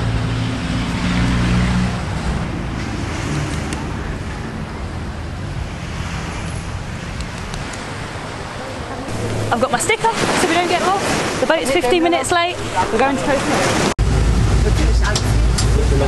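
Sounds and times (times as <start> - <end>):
low engine hum: 0.0 - 11.4, 12.5 - 16.0
waves: 0.0 - 16.0
wind: 0.0 - 16.0.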